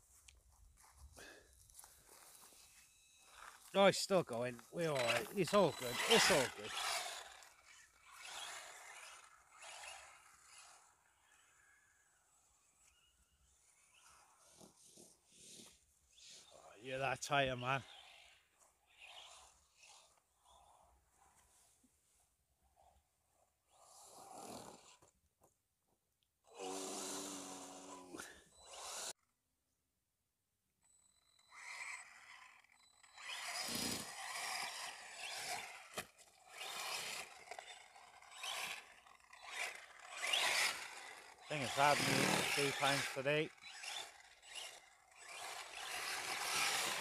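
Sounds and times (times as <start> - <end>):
electric motor whining: 4.6 - 11.5, 26.5 - 29.1, 31.4 - 47.0.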